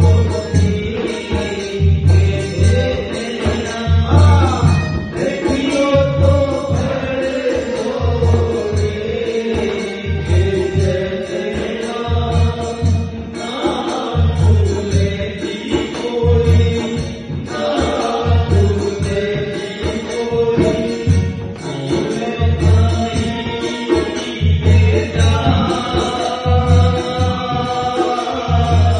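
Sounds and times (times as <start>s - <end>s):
barrel drum rhythm: 0.0s - 28.9s
man singing into a microphone: 0.0s - 28.9s.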